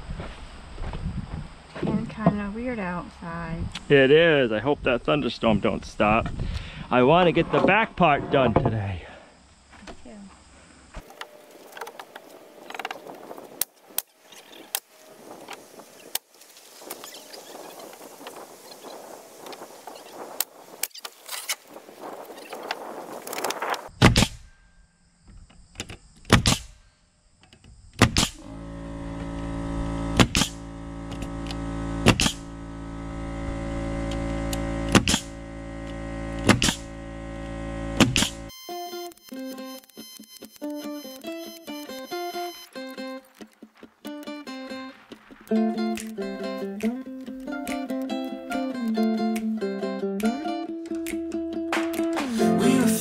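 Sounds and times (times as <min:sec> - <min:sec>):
nail gun shots into wood: 0:24.0 - 0:24.5, 0:26.2 - 0:26.8, 0:28.0 - 0:28.4, 0:30.2 - 0:30.6, 0:32.0 - 0:32.4, 0:34.9 - 0:35.3, 0:36.4 - 0:36.8, 0:38.0 - 0:38.4
background music: 0:44.1 - 0:53.0.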